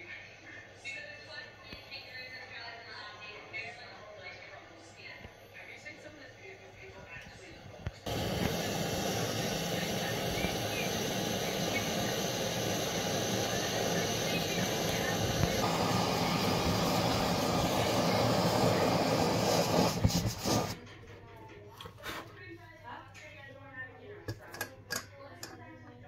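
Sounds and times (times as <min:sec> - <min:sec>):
camping stove burner rushing: 0:08.0 - 0:20.8.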